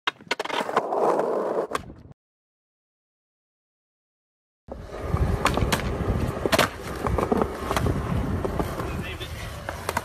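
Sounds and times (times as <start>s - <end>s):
skateboard wheels rolling: 0.1s - 2.1s, 4.7s - 10.0s
skateboard clacks: 5.0s - 10.0s.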